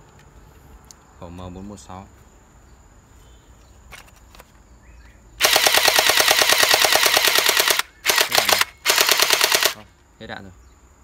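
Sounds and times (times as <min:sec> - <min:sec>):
toy blaster rapid firing: 0:05.4 - 0:09.8.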